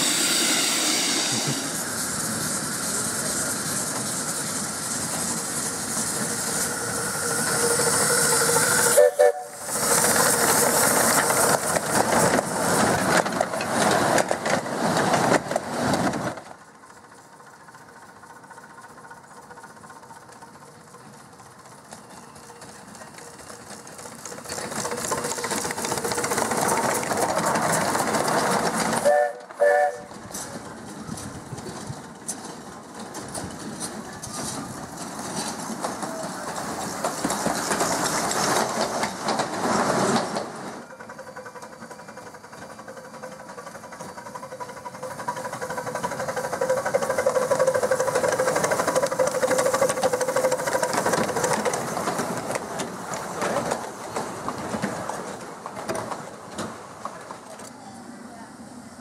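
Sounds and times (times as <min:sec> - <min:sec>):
steam whistle toots: 0:00.0 - 0:01.7, 0:06.6 - 0:09.7, 0:29.0 - 0:30.2
steam locomotive chuffing: 0:00.0 - 0:59.0.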